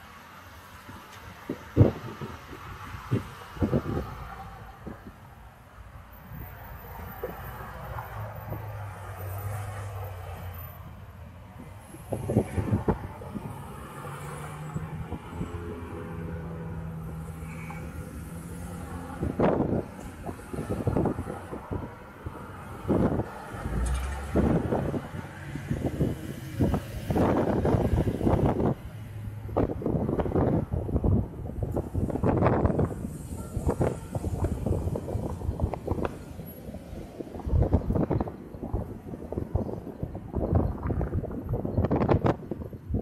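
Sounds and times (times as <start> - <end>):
hum of nearby cars: 0.0 - 43.0
vehicles rushing past: 0.0 - 43.0.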